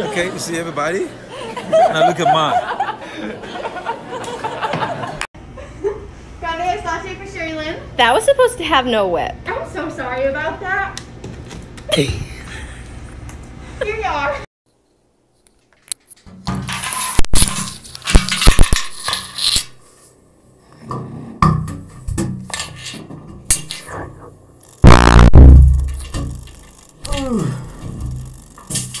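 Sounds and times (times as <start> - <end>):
low tuba blast: 24.8 - 26.3.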